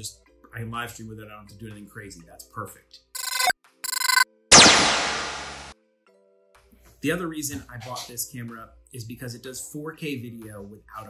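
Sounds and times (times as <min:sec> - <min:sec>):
electronic crash burst: 0:04.5 - 0:05.7.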